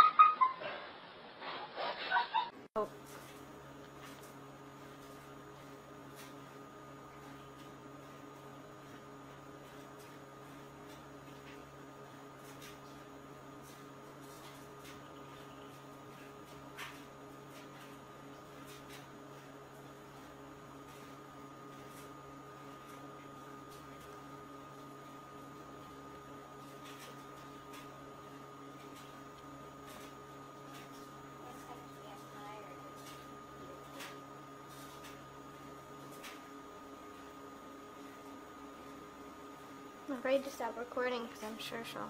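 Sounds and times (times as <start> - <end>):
electrical hum: 1.4 - 42.0.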